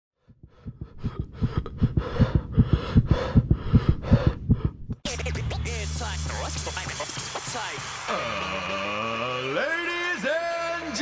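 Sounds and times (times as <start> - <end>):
rapid low thumps: 0.2 - 5.5.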